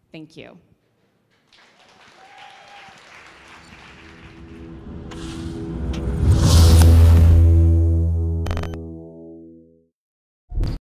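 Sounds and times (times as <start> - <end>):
synth swell: 3.9 - 9.6
deep synth hit: 4.4 - 9.5.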